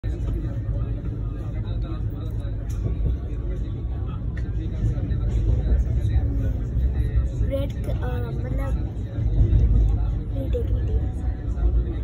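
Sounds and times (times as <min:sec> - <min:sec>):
faint voices: 0:00.0 - 0:12.0
train rumble from inside coach: 0:00.0 - 0:12.0.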